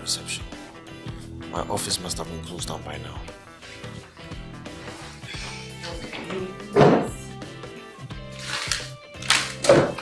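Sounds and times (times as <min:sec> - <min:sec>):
loud thunk: 0:06.8 - 0:07.1.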